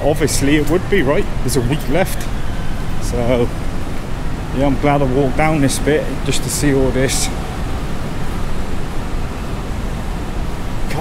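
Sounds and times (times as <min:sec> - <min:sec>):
low rushing noise: 0:00.0 - 0:11.0.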